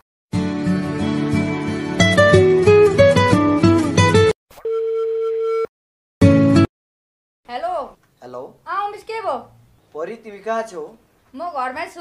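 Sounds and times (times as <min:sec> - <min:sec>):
telephone line tone: 0:04.6 - 0:05.7.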